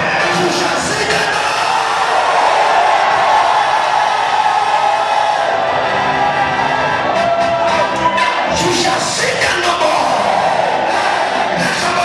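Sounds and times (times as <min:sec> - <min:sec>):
crowd cheering and shouting: 0:00.0 - 0:12.0
loud music: 0:00.0 - 0:12.0.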